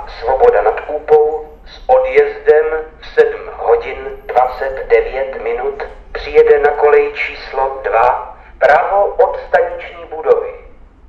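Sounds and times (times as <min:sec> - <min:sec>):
recorded man's voice announcement: 0:00.0 - 0:10.8.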